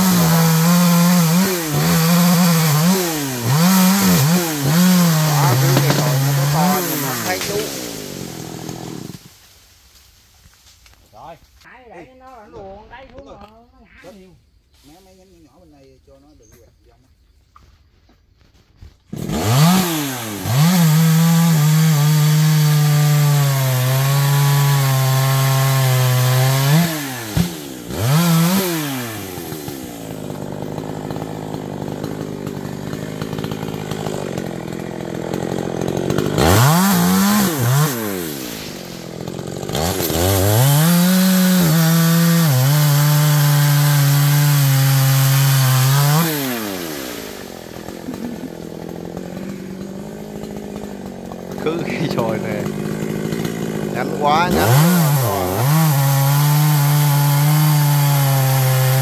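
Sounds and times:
chainsaw idling: 0.0 - 10.0, 19.1 - 59.0
chainsaw cutting wood: 0.0 - 11.0, 18.3 - 59.0.

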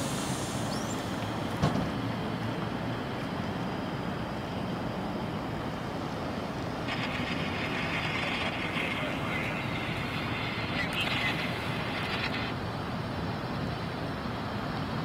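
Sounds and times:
higher hiss: 0.0 - 1.3
idling vehicles and traffic rumble: 0.0 - 15.0.

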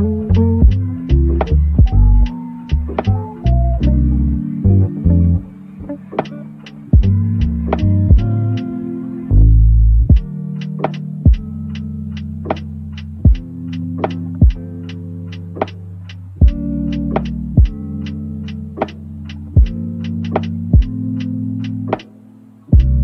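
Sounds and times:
lofi hip-hop instrumental: 0.0 - 23.0
heavy bass hit: 0.3 - 4.0, 7.0 - 8.4, 9.3 - 10.3.

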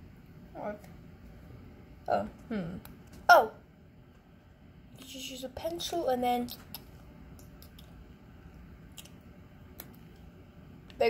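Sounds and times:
low room hiss: 0.0 - 11.0.

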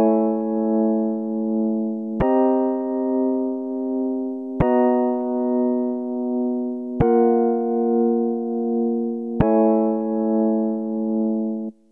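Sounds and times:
held keyboard chords: 0.0 - 11.9.

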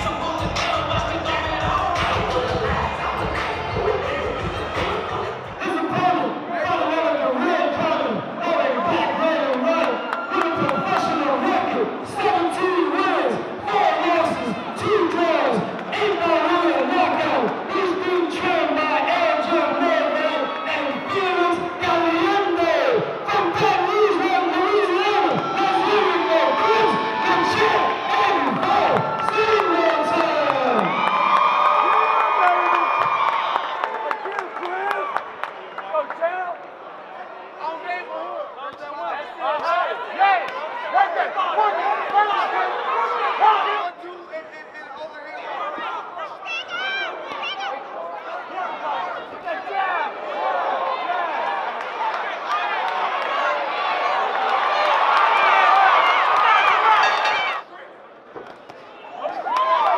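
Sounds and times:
crowd cheering and shouting: 0.0 - 57.9, 58.8 - 59.9.

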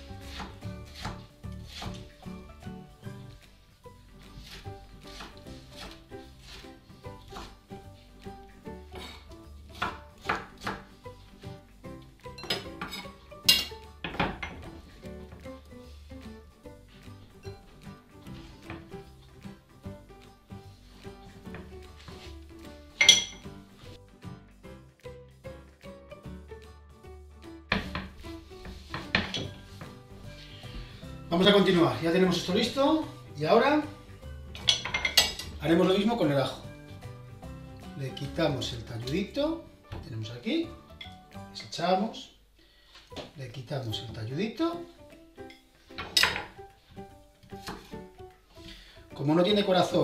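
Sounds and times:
background music: 0.0 - 50.0.

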